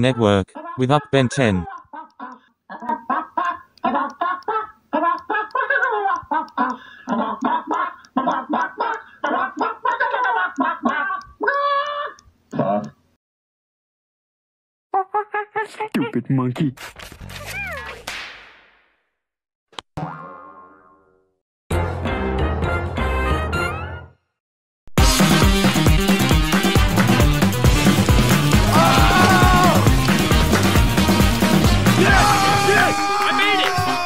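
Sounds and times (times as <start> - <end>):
person making clucking calls: 0.0 - 13.0, 26.6 - 32.1
cartoon boing: 20.0 - 21.3.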